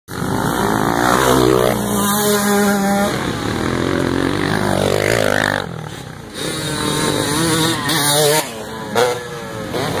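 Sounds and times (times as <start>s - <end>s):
dirt bike engines revving: 0.1s - 10.0s.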